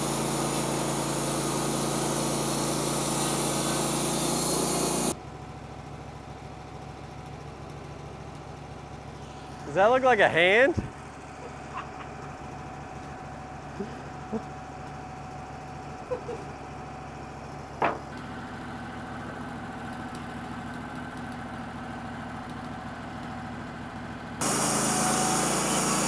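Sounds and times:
sawmill engine idling: 0:00.0 - 0:26.0.

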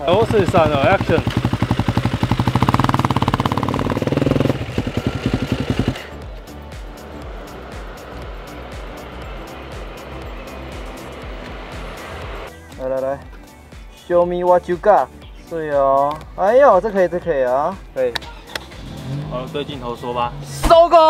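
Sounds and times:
background music: 0:00.0 - 0:01.2, 0:02.7 - 0:21.0
motorcycle engine revving: 0:00.0 - 0:12.5, 0:18.6 - 0:20.7.

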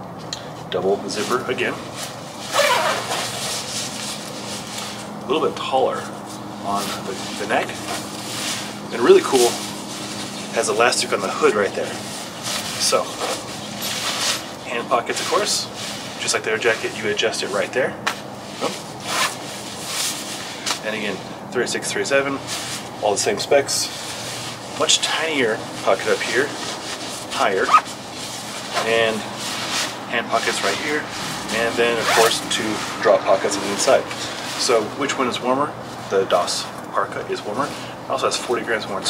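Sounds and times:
nylon jacket rustling: 0:01.1 - 0:21.3, 0:23.6 - 0:35.0
jacket zipper being pulled up: 0:02.5 - 0:04.6, 0:18.6 - 0:20.2, 0:27.0 - 0:28.0, 0:31.2 - 0:32.6.

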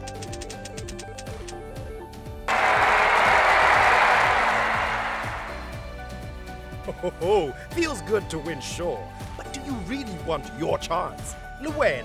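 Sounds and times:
background music: 0:02.4 - 0:12.0
applause and cheering: 0:02.5 - 0:06.2.

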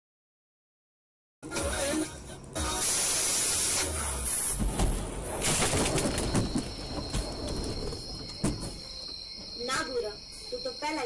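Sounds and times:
loud steady hiss: 0:01.4 - 0:05.7.

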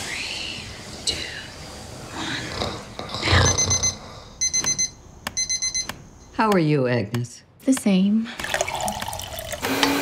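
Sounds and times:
alarm clock beeping: 0:03.5 - 0:06.0.

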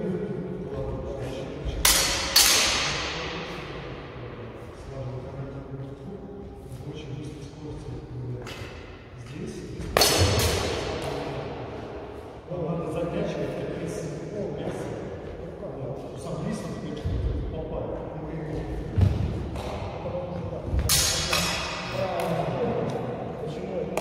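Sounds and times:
steel sabres clashing: 0:01.8 - 0:03.4, 0:20.9 - 0:22.0.

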